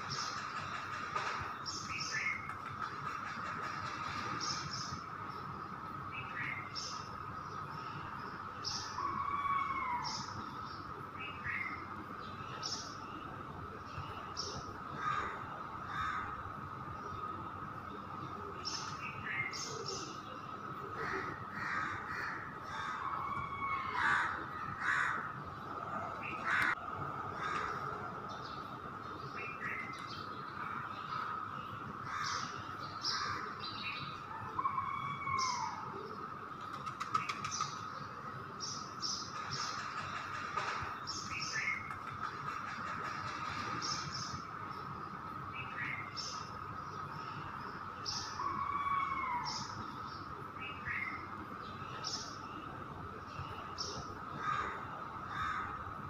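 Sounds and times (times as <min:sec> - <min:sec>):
crows cawing: 0:15.0 - 0:16.4, 0:21.0 - 0:28.1, 0:54.4 - 0:55.8.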